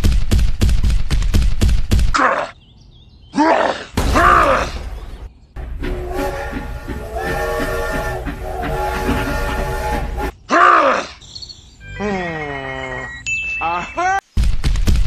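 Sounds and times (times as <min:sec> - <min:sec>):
strained effort groans: 0:05.6 - 0:11.2.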